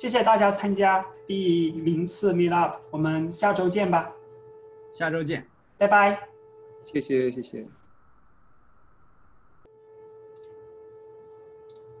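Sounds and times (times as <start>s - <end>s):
faint electronic tones: 0.0s - 12.0s
low steady hum: 0.0s - 12.0s.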